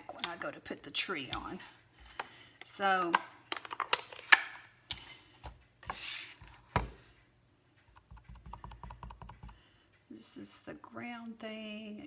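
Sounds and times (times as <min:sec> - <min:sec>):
acrylic blocks clicking and knocking: 0:00.0 - 0:01.6.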